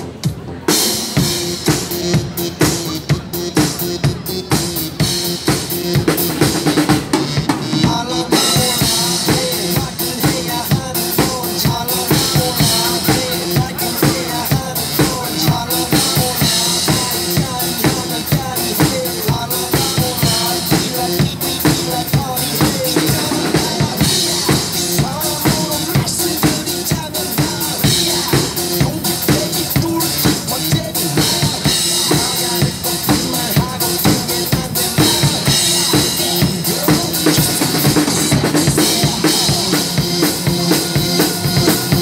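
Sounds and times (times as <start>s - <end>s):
acoustic drum kit pop beat: 0.0s - 42.0s
dance-pop backing track: 0.0s - 42.0s.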